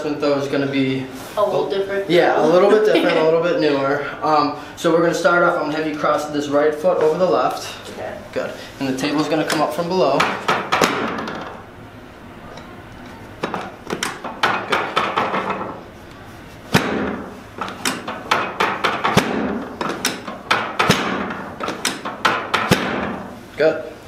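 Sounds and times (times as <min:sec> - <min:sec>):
drop table knocking: 0:09.5 - 0:11.6, 0:13.4 - 0:15.8, 0:16.7 - 0:23.2.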